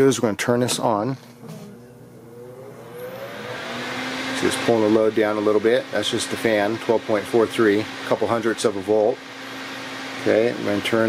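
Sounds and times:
cooling fan whirring: 0.0 - 11.0.

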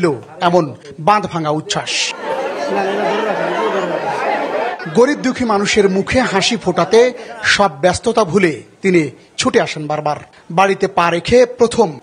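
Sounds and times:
crowd babble: 1.6 - 7.8.

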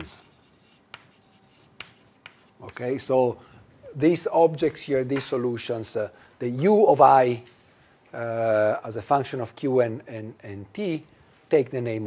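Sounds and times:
chalk tapping on blackboard: 0.0 - 2.9
low room noise: 0.0 - 12.0.

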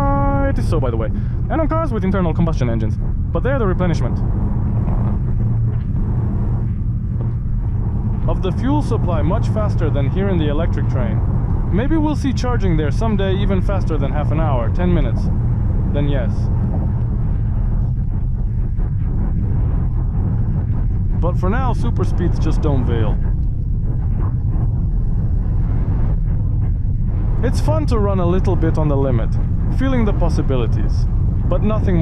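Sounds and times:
tyre rumble: 0.0 - 32.0
wind noise in car cabin: 0.0 - 32.0.

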